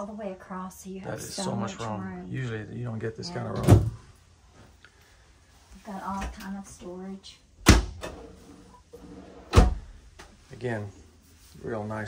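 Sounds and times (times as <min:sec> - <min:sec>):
wooden cabinet door shutting: 0:03.6 - 0:04.0, 0:07.6 - 0:08.2, 0:09.5 - 0:09.9.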